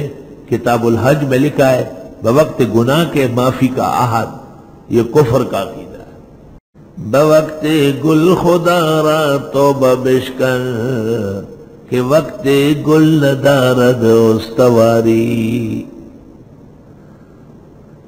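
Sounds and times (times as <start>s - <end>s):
man chanting melodically: 0.0s - 6.2s, 6.9s - 16.2s.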